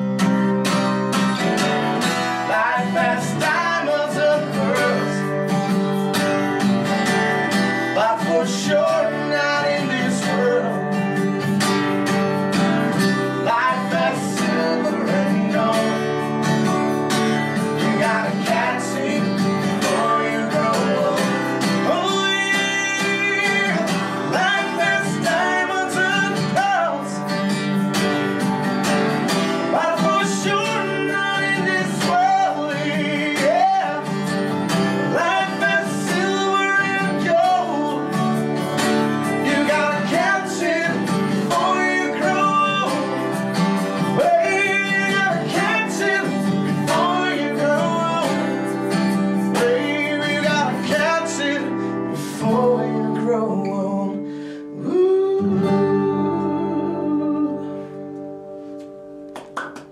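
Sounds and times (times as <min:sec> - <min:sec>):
acoustic guitar strumming: 0:00.0 - 0:59.9
man singing: 0:01.6 - 0:05.6, 0:07.4 - 0:11.6, 0:12.8 - 0:16.8, 0:17.4 - 0:28.0, 0:29.3 - 0:57.8.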